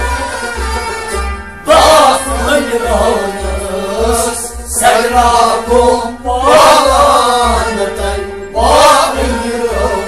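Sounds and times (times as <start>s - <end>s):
steady low beat: 0.0s - 10.0s.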